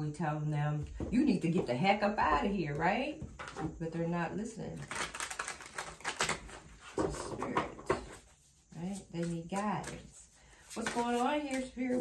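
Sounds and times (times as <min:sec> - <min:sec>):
cards being shuffled: 0:04.8 - 0:07.4, 0:09.0 - 0:12.0.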